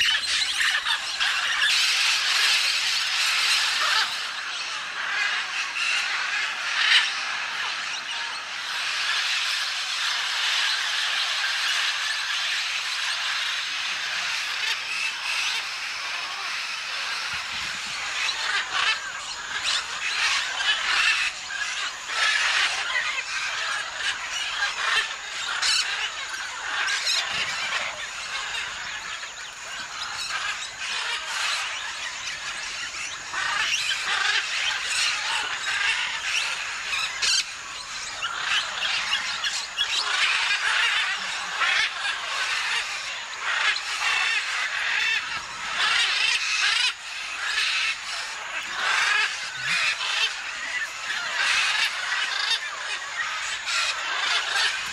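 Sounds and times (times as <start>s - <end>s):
parrots screeching: 0.0s - 54.9s.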